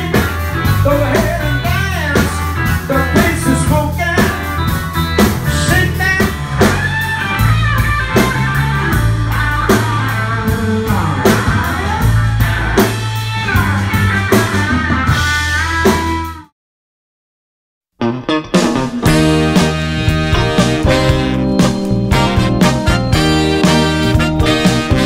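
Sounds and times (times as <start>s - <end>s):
blues band playing: 0.0s - 16.5s, 18.0s - 25.0s.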